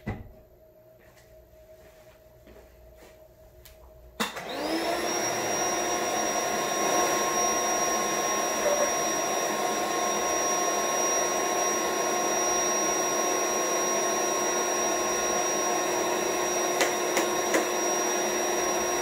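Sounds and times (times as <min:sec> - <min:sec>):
air pump motor whine: 0:04.2 - 0:19.0.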